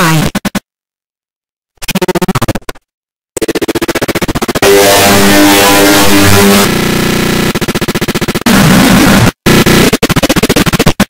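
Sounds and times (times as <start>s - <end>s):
distorted stuttering loop: 3.4s - 11.0s
harsh noise burst: 3.4s - 11.0s.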